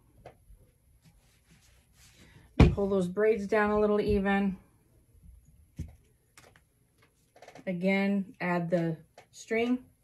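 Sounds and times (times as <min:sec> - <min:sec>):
soft handling noises: 0:00.1 - 0:02.5.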